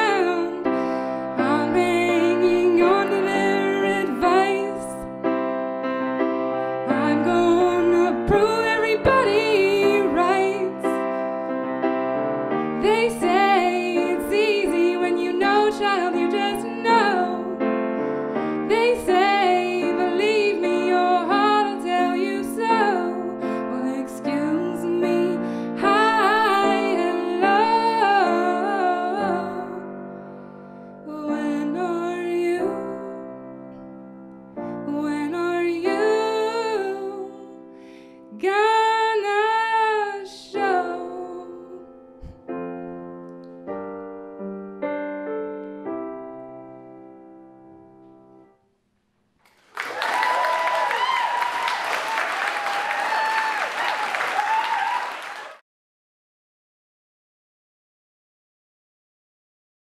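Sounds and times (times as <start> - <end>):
woman singing with vibrato: 0.0 - 5.1, 6.9 - 11.0, 12.8 - 17.6, 18.6 - 29.9, 31.1 - 33.2, 34.9 - 37.6, 38.3 - 41.8
piano chords: 0.0 - 48.6
audience applauding: 49.5 - 55.6.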